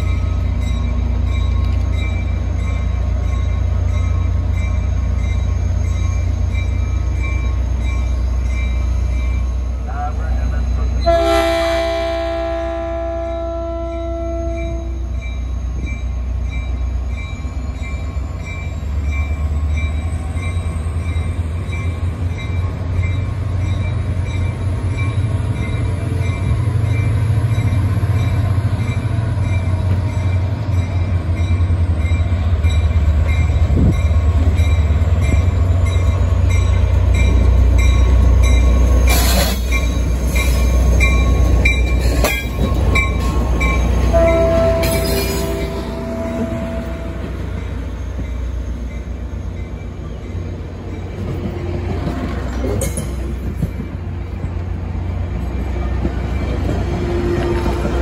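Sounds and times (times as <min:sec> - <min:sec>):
diesel locomotive engine rumble: 0:00.0 - 0:58.0
train horn chord: 0:11.0 - 0:15.0, 0:44.1 - 0:47.4.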